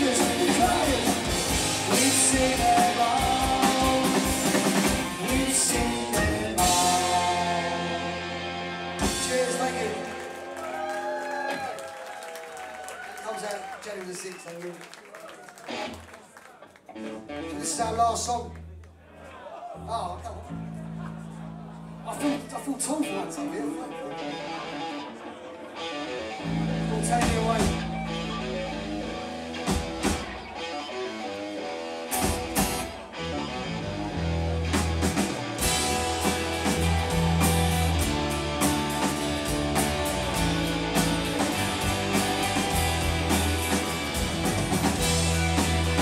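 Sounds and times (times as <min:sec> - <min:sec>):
live indie band playing: 0:00.0 - 0:11.8, 0:15.6 - 0:18.6, 0:20.5 - 0:46.0.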